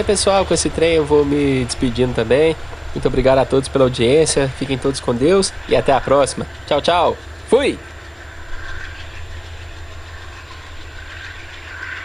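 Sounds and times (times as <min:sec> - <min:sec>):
locomotive engine rumbling: 0:00.0 - 0:12.0.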